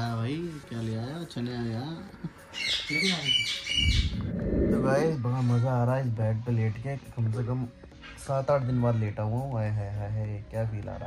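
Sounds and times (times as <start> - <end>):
muffled low rumble: 3.8 - 5.3.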